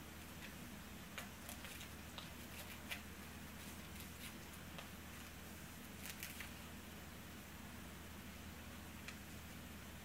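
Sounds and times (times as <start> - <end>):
steady low hum: 0.0 - 10.0
small clicks and rustles: 6.0 - 6.6.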